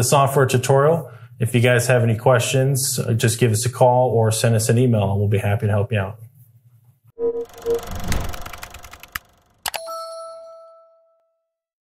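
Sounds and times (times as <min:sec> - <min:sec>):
noisy whoosh: 0:07.2 - 0:09.6
sharp clicks: 0:07.9 - 0:09.8.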